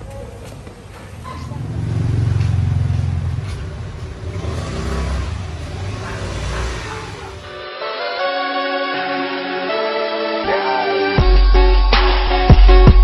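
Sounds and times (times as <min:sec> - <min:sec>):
vehicle engine passing by: 0:01.0 - 0:07.6.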